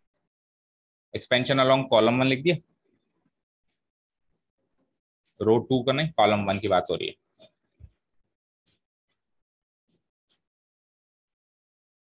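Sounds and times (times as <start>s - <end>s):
man speaking: 5.4s - 7.2s.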